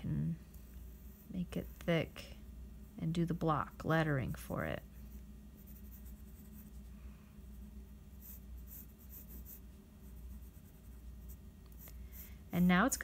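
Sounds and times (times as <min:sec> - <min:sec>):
pencil scratching on paper: 0:05.6 - 0:06.8, 0:08.1 - 0:12.3.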